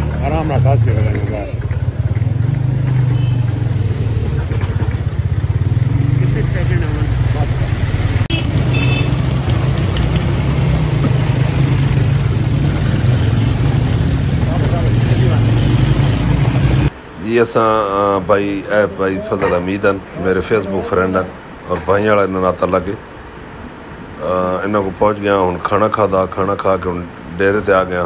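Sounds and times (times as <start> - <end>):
people's voices: 0.0 - 5.2, 6.0 - 10.4, 12.5 - 23.1, 23.9 - 28.0
vehicle engine running: 0.0 - 16.9
passing street traffic: 0.0 - 28.0.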